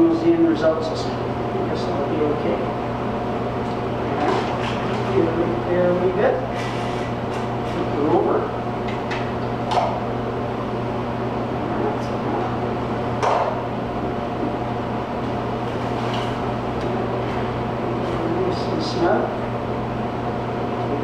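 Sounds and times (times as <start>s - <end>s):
steady electrical hum: 0.0s - 21.0s.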